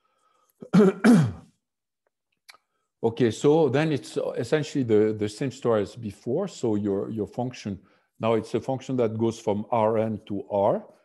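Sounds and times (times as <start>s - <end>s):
man clearing his throat: 0.6s - 1.5s.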